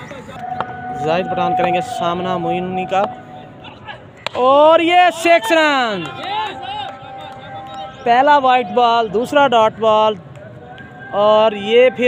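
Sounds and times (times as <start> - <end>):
steady held tones: 0.3 - 9.4
man calling out: 3.6 - 7.2.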